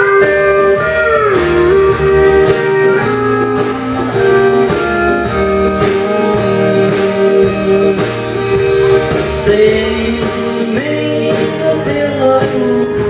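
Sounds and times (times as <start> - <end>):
electric guitar: 0.0 - 13.0
pedal steel guitar: 0.0 - 13.0
steady drum beat: 0.0 - 13.0.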